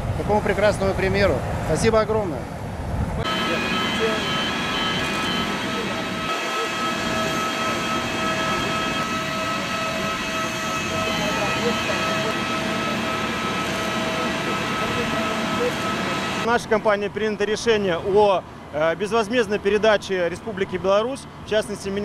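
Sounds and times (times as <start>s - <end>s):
jet engine whine: 2.4s - 22.0s.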